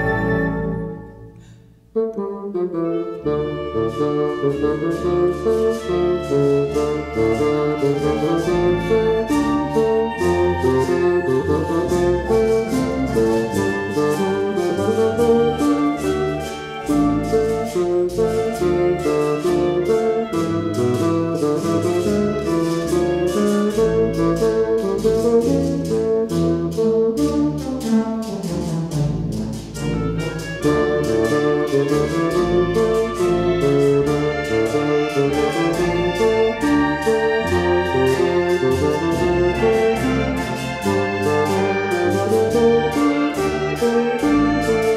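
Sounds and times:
bassoon with wind ensemble: 0.0s - 44.9s.

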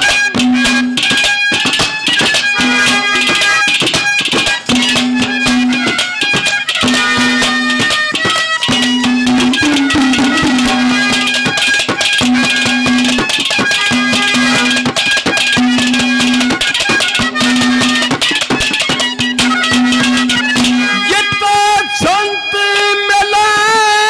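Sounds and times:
fast hand-drum strokes: 0.0s - 22.2s
harmonium melody: 0.0s - 24.0s.

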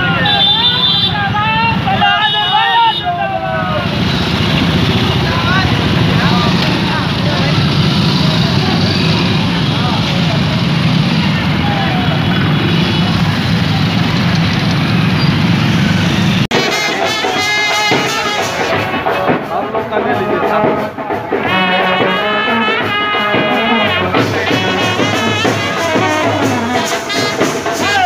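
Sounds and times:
crowd voices and shouts: 0.0s - 28.0s
motorcycle engines rumbling: 0.0s - 28.0s
music with drums: 3.8s - 11.7s, 16.4s - 28.0s.

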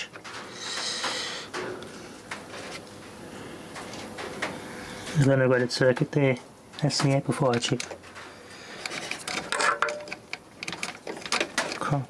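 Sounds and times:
small clicks and rattles of plastic: 3.8s - 12.0s.

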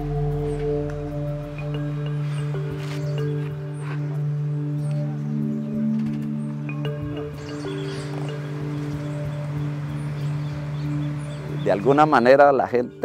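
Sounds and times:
steady drone: 0.0s - 12.2s
low held music notes: 0.0s - 13.0s.

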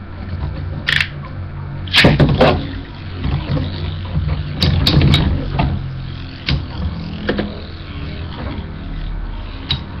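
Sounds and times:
spinning tops whirring: 1.8s - 10.0s.

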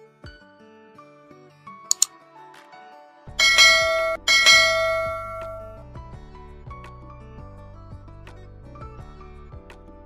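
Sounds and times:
soft background music: 0.0s - 10.0s
bright bell chimes: 3.4s - 5.8s.

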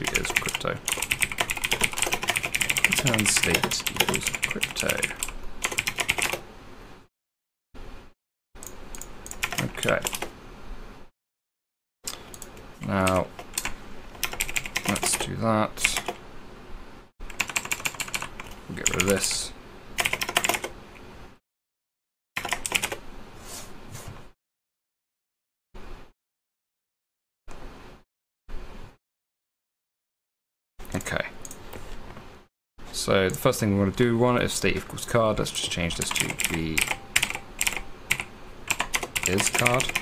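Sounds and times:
typing on computer keyboard: 0.0s - 6.4s, 9.0s - 10.3s, 13.1s - 15.2s, 17.3s - 19.2s, 20.0s - 20.7s, 22.4s - 23.0s, 36.0s - 40.0s.

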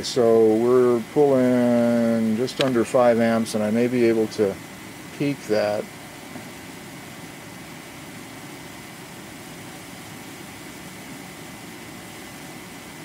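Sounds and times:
cooling fan running: 0.0s - 13.0s
tesla coil hissing and whining: 0.0s - 13.0s.

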